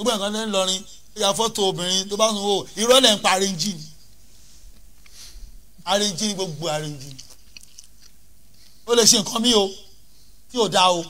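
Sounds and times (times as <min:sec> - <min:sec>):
man speaking: 0:00.0 - 0:04.0, 0:05.8 - 0:07.3, 0:08.9 - 0:11.0.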